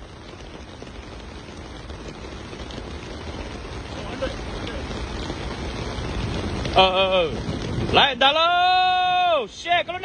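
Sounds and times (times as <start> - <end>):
low rumble of wind: 0.0 - 10.0
rain falling: 0.0 - 10.0.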